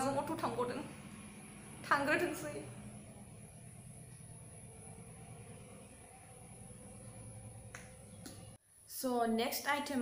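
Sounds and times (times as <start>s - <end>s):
low steady hum: 0.0s - 8.9s.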